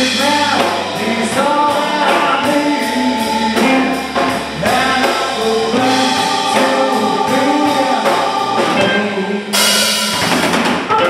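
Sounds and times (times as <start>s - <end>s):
man singing: 0.0s - 9.6s
drums on cymbals: 0.0s - 11.0s.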